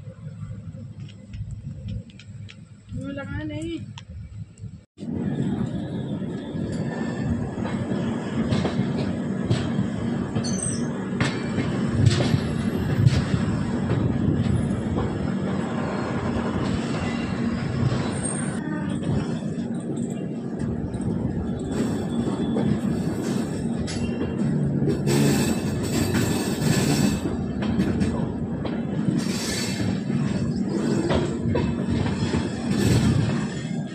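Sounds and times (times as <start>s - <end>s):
train wheels rumbling on track: 0.0s - 33.9s.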